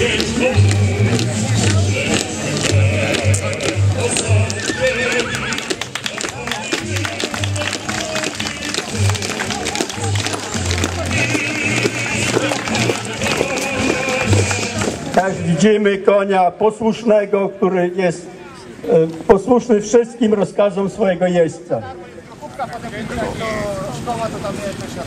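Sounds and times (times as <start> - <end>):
bass drum beat: 0.0 - 15.1
band playing a march: 0.0 - 15.4.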